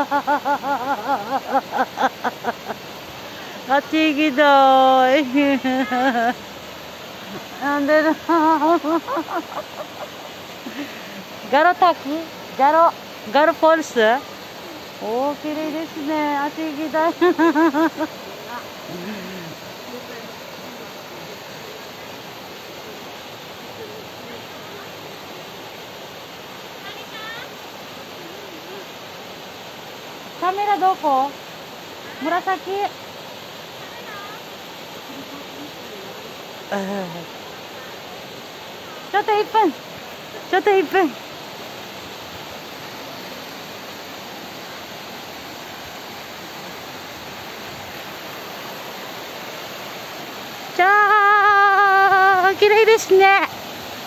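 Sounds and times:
shallow stream running: 0:00.0 - 0:54.0
waterfall rushing: 0:00.0 - 0:54.0.

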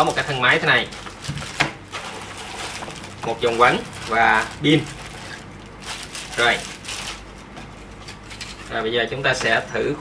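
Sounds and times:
plastic bag crinkling: 0:00.0 - 0:08.8.

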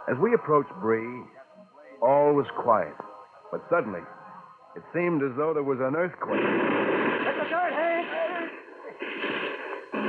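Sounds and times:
man's voice: 0:00.0 - 0:01.3, 0:02.0 - 0:04.0.

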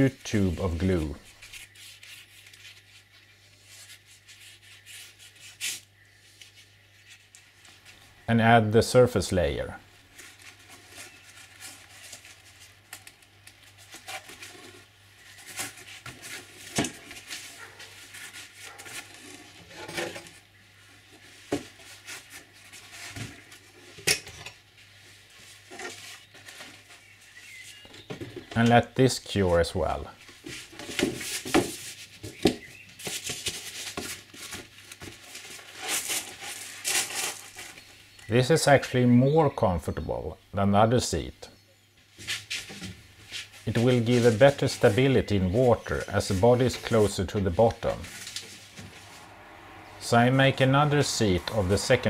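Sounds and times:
foam rustling and scraping: 0:10.1 - 0:24.0, 0:30.3 - 0:37.9, 0:42.2 - 0:52.0.

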